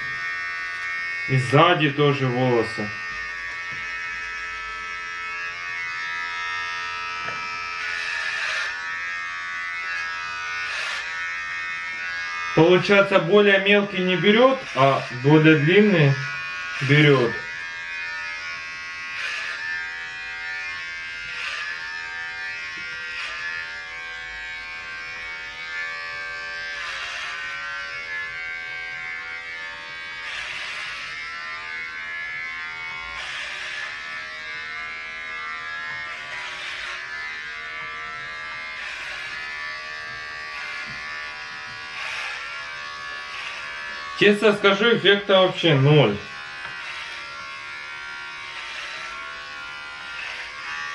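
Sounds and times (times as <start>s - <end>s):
electric hair clippers buzzing: 0.0s - 50.9s.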